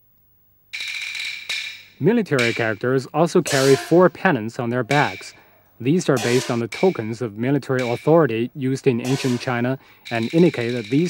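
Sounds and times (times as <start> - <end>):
sharp wooden click: 0.8 - 2.8, 7.8 - 8.1
bright metallic ringing: 0.8 - 3.9, 4.8 - 5.4, 6.0 - 8.4, 9.0 - 11.0.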